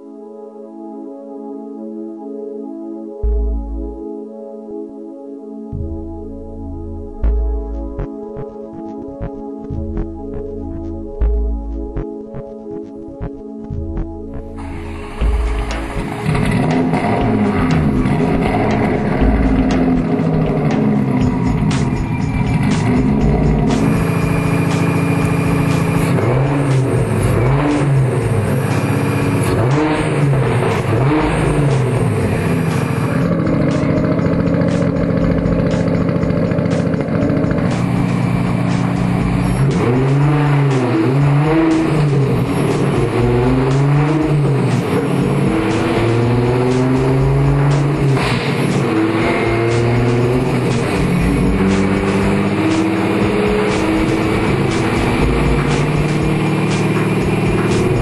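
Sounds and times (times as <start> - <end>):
car engine revving: 6.5 - 58.0.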